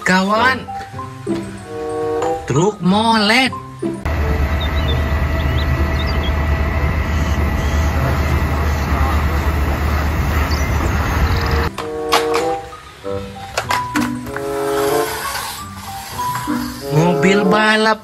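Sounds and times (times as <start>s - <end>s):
cheerful background music: 0.0s - 4.9s, 11.7s - 18.0s
diesel truck engine running: 4.1s - 11.7s.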